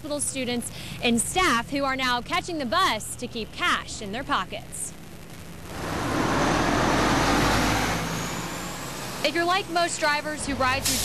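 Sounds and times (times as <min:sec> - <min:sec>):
bus driving past: 0:05.6 - 0:11.0.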